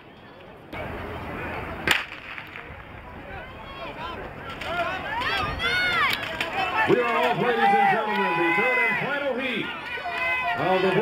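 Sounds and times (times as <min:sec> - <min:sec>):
spectators shouting and cheering: 0:02.7 - 0:11.0.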